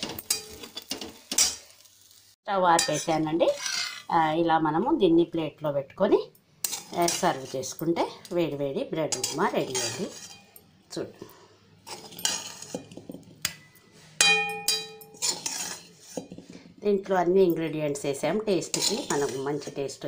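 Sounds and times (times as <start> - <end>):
spoon scraping a steel plate: 0.0 - 1.6, 2.8 - 4.1, 6.6 - 7.8, 9.1 - 10.6, 11.8 - 13.0, 14.2 - 16.5, 18.6 - 19.8
plate ringing: 13.6 - 15.2.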